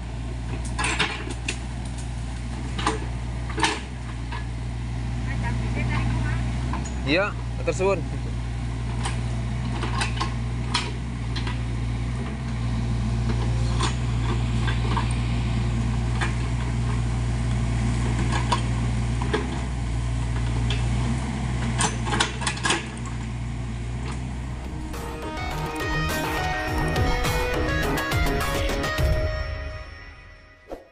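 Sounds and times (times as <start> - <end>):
excavator diesel engine running: 0.0 - 30.6.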